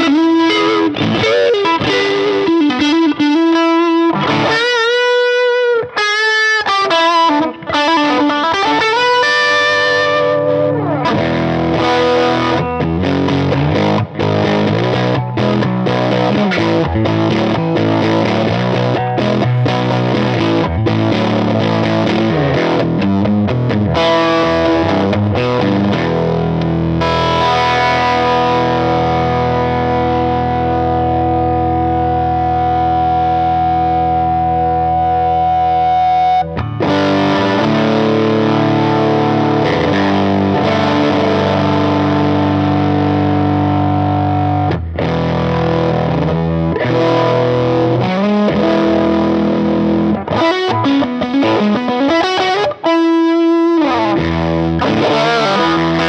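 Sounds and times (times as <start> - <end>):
distorted electric guitar chords: 0.0 - 56.0.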